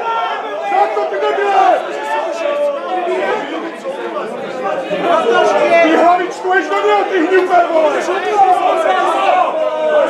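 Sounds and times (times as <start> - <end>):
men talking over one another: 0.0 - 10.0.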